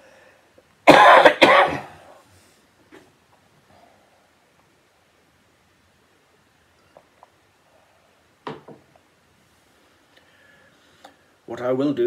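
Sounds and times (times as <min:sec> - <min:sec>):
man coughing into tissue: 0:00.8 - 0:02.2.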